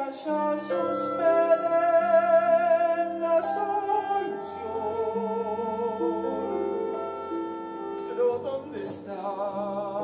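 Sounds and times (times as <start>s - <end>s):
person singing with vibrato: 0.0s - 10.0s.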